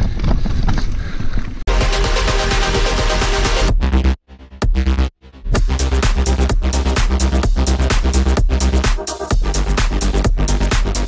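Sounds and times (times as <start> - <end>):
electronic music with steady beat: 1.7 - 11.0.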